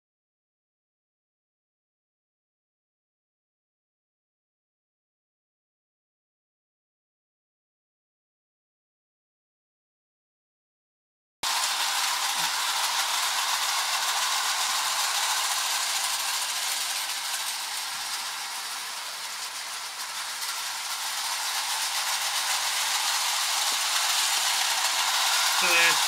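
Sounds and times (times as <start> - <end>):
model train rattling on track: 11.4 - 26.0.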